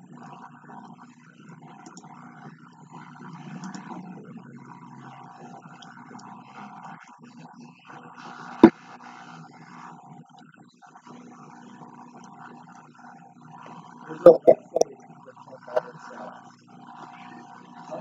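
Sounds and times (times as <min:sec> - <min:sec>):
muffled background noise: 0:00.0 - 0:18.0.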